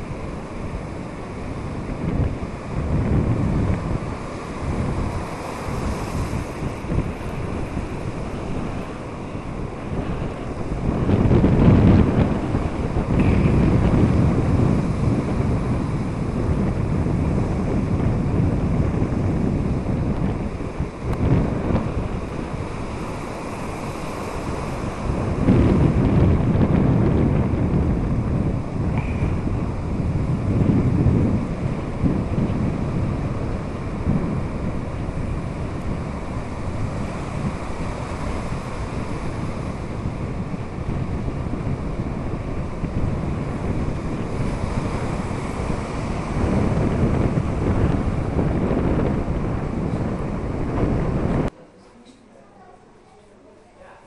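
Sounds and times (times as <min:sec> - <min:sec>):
wind buffeting microphone: 0:00.0 - 0:51.6
sea surf: 0:00.0 - 0:51.8.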